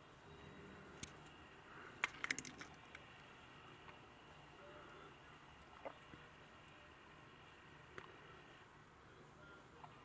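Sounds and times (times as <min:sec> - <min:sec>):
faint steady background noise: 0:00.0 - 0:10.0.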